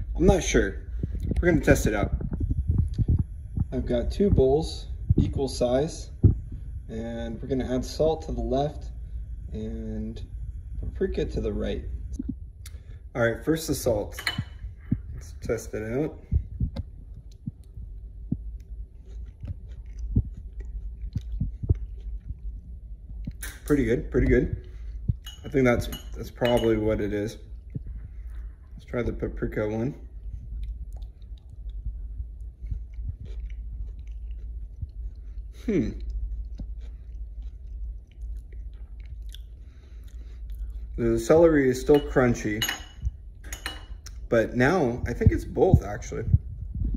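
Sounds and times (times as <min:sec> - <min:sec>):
low steady hum: 0:00.0 - 0:46.9
soft low thumps: 0:00.0 - 0:46.9
man chewing: 0:16.3 - 0:23.6, 0:30.1 - 0:41.6.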